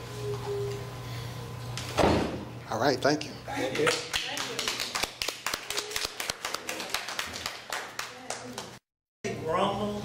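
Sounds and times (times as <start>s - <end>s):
people applauding: 3.8s - 8.8s.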